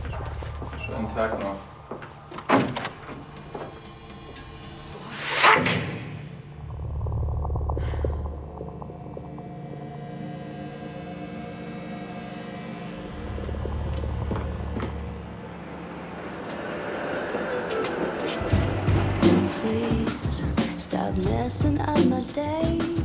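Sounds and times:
door shutting: 2.4s - 4.6s
dramatic music with drone: 3.0s - 20.8s.

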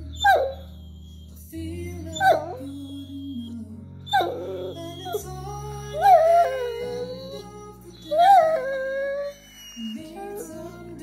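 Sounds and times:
background music: 0.0s - 11.0s
dog whining: 0.1s - 1.4s, 2.1s - 5.3s, 5.9s - 10.9s.

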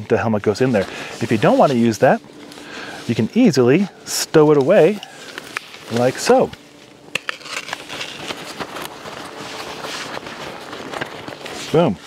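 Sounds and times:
nylon fabric rustling: 0.5s - 12.0s.

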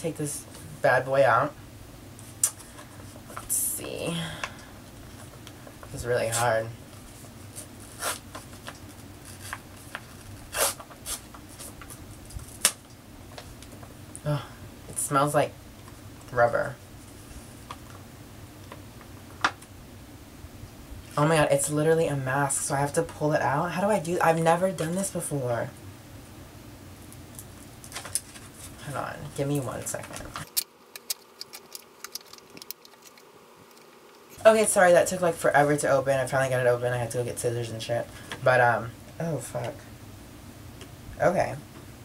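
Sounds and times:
pouch tearing: 7.9s - 11.2s
pouch crinkling: 30.3s - 34.4s.

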